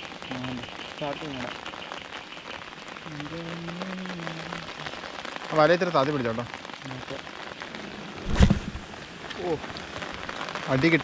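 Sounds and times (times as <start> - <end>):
rain falling on river water: 0.0 - 11.0.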